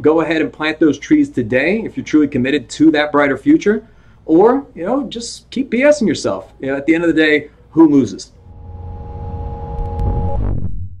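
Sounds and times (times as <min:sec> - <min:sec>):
held two-note synth tone: 0:08.4 - 0:10.6
deep synthesized rumble: 0:08.4 - 0:11.0.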